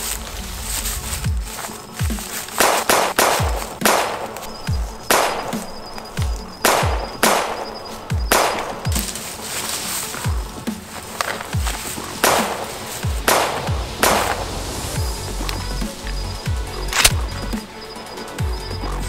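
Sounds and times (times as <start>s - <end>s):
noisy hits: 0.0s - 9.4s, 10.1s - 19.0s
tense film score music: 0.0s - 19.0s.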